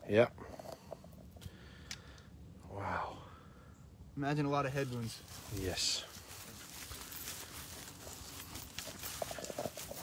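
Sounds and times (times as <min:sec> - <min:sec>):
footsteps through dry grass: 0:04.7 - 0:10.0.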